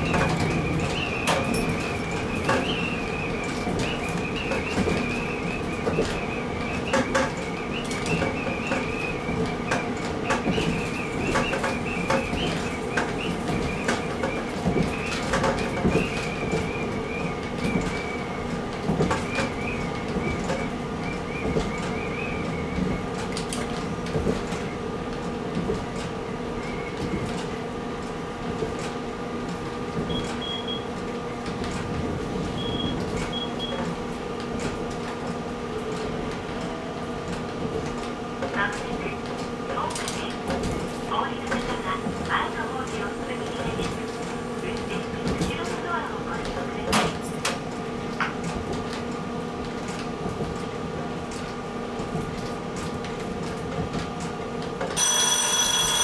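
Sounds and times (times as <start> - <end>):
railcar engine hum: 0.0 - 56.0
wheels clicking on track: 0.0 - 56.0.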